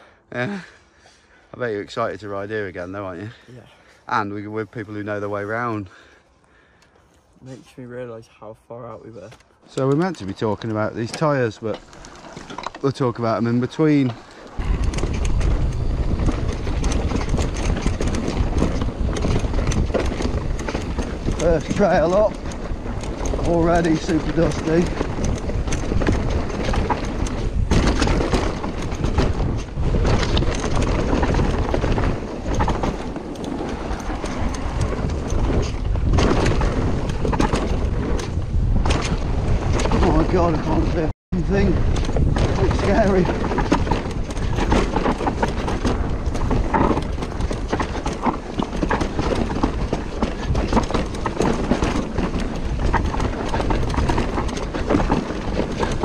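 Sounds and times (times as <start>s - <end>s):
bike tyres on loose dirt: 0.0s - 7.6s, 9.1s - 56.0s
bike rattling and knocking: 1.9s - 3.4s, 9.2s - 56.0s
wind on microphone: 14.5s - 56.0s.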